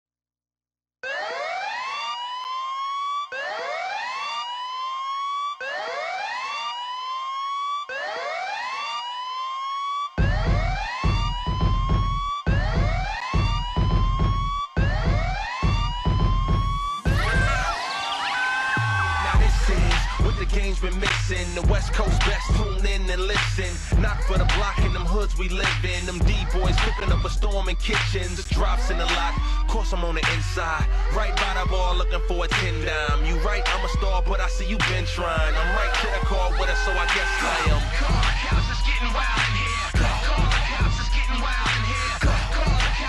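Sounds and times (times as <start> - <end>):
siren-like rising wail: 1.0 - 43.0
heavy bass beat: 10.2 - 17.8, 18.8 - 43.0
person rapping: 17.1 - 17.8, 19.0 - 43.0.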